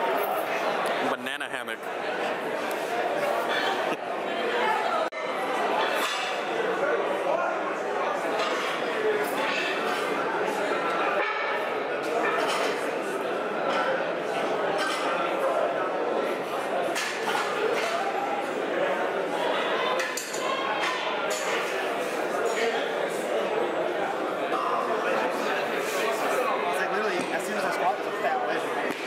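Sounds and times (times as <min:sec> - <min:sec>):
crowd chatter in hall: 0:00.0 - 0:29.0.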